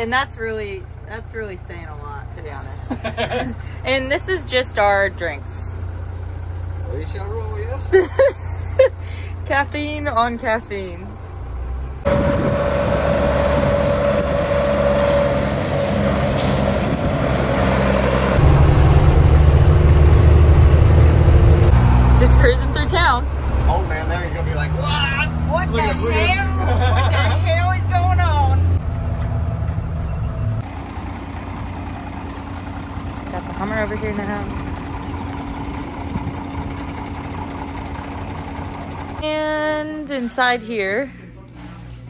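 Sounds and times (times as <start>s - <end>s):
truck diesel engine running: 0.0s - 41.9s.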